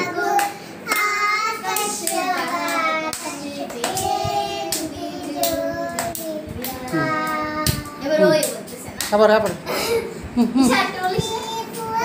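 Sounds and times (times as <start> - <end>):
children singing: 0.0 - 2.8
children clapping hands: 0.4 - 1.1, 1.7 - 7.0.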